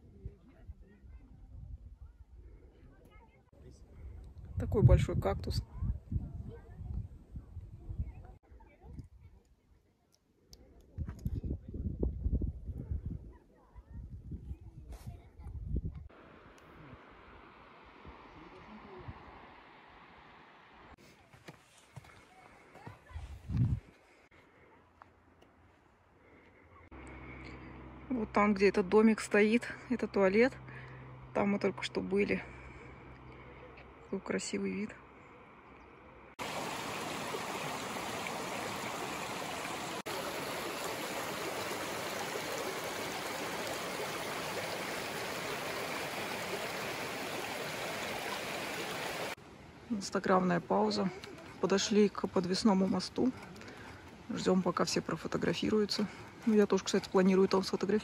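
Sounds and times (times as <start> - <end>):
stream flowing over stones: 36.4 - 49.4.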